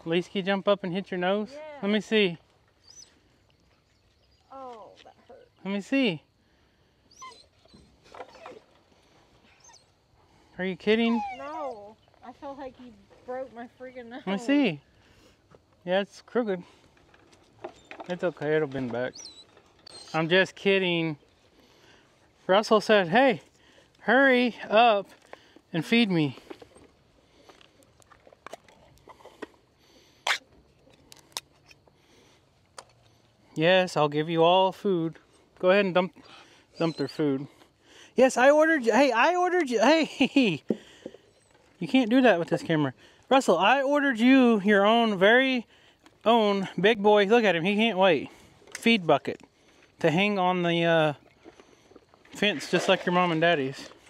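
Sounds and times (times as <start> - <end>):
dog whimpering: 7.1 - 8.7, 9.4 - 10.0, 10.9 - 12.0, 19.1 - 20.2, 36.1 - 37.2.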